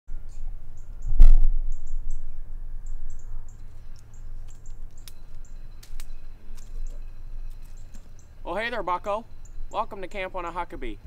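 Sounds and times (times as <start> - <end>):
wind rumble on microphone: 0.1 - 8.4.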